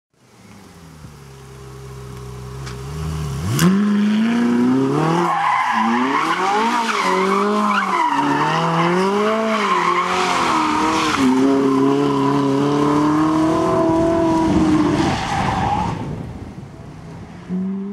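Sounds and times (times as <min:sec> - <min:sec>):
sports car engine revving: 0:00.6 - 0:15.0.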